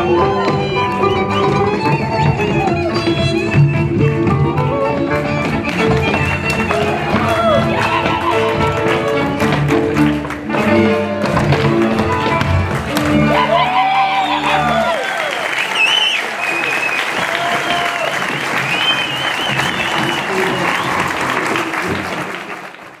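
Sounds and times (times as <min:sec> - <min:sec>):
folk band music: 0:00.0 - 0:15.0
applause: 0:12.7 - 0:23.0.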